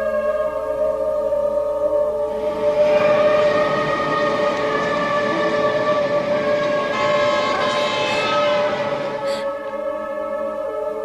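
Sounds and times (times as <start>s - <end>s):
sustained droning chord: 0.0s - 11.0s.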